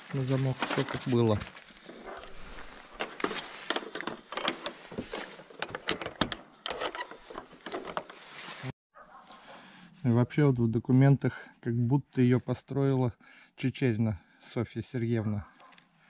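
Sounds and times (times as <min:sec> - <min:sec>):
padlock and hasp rattling: 0:01.8 - 0:08.2.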